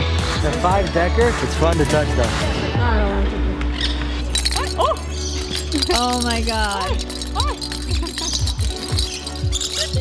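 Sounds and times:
background music: 0.0s - 10.0s
plastic ball toy rattling: 4.2s - 10.0s.

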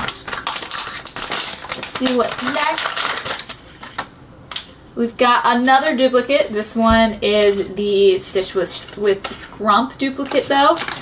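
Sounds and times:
foil bag crinkling and tearing: 0.0s - 4.7s, 8.4s - 11.0s.

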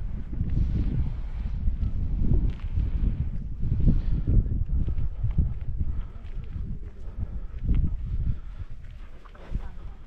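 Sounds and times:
footsteps on a dirt path: 0.0s - 10.0s
wind rumbling on microphone: 0.0s - 10.0s.

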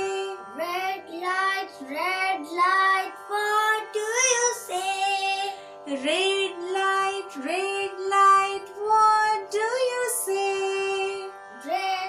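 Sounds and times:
child singing: 0.0s - 12.0s
held musical backing: 0.0s - 12.0s
woman singing: 0.0s - 12.0s.

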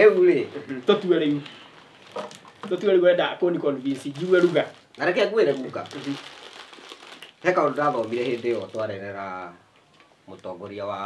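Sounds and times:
plastic wrapping crinkling: 0.0s - 10.8s.

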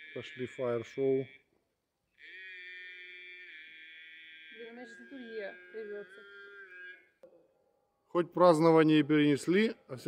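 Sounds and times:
liturgical chanting over loudspeaker: 0.0s - 1.4s, 2.2s - 7.2s.

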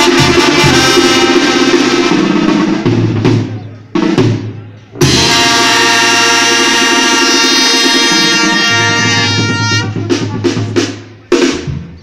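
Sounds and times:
brass section holding chord: 0.0s - 2.1s, 5.0s - 9.9s.

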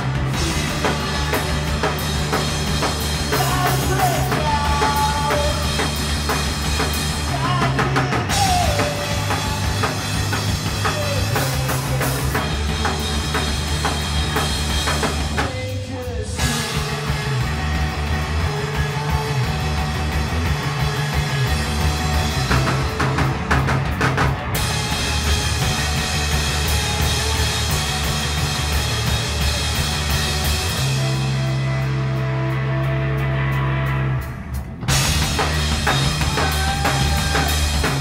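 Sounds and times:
drum kit with heavy cymbals: 0.0s - 38.0s
electric guitar: 0.0s - 38.0s
overdriven bass: 0.0s - 38.0s.

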